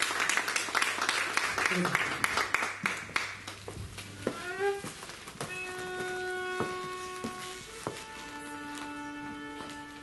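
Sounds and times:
bowed viola d'amore: 4.2s - 10.0s.

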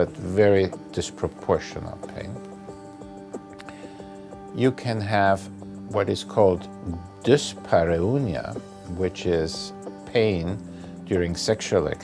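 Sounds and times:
quiet music with held chords: 0.0s - 12.0s.

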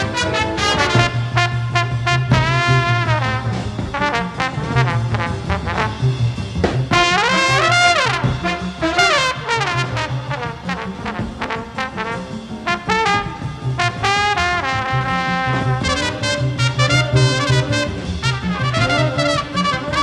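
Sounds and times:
bass line: 0.0s - 20.0s
brass section chords: 0.0s - 20.0s.

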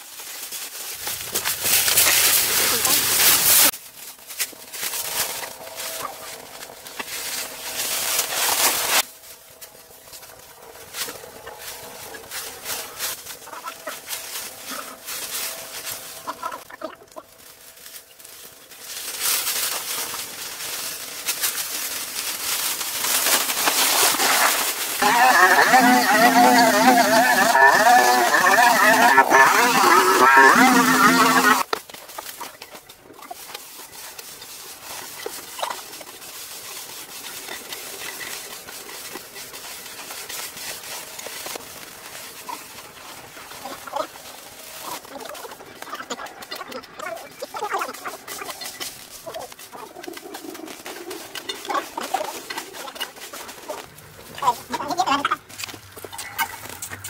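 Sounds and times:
hand hoe scraping soil: 0.0s - 16.7s, 18.8s - 57.0s
brush cutter engine at high revs: 25.0s - 31.6s.

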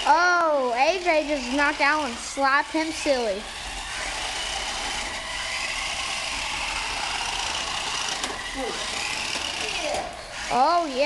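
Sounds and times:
toy car electric motors whining: 0.0s - 11.0s.

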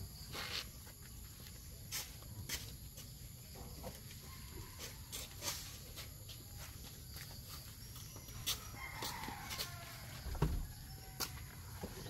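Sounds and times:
faint rooster crowing: 4.0s - 5.8s, 8.4s - 12.0s.

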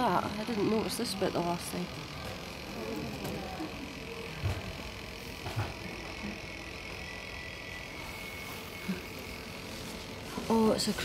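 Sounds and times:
small electric motor whirring: 0.0s - 11.0s.

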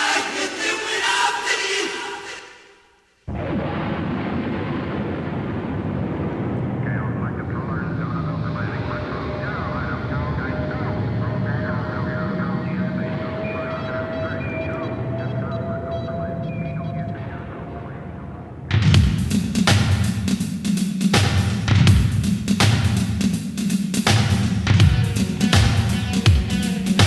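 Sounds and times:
rocket rumbling roar: 3.3s - 18.7s
radio-like voice chatter: 6.8s - 18.7s.

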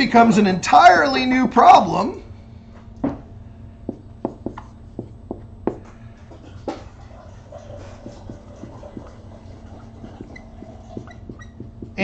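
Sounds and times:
low steady hum: 0.0s - 12.0s
marker writing on a board: 3.9s - 6.8s, 7.8s - 12.0s.

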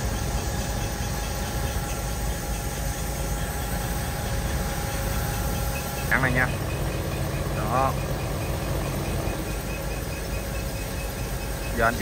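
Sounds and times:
boat diesel engine rumbling: 0.0s - 12.0s
water churning from propeller: 0.0s - 12.0s.

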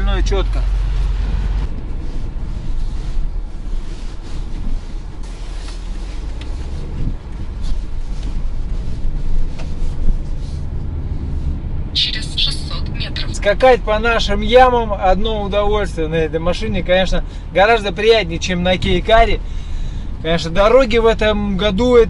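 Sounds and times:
tyre and road noise in car: 0.0s - 22.0s.

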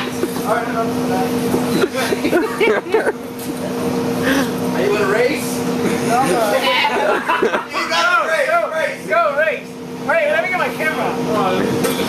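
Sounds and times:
low mechanical hum: 0.0s - 12.0s
men whooping and shouting: 6.2s - 9.7s.

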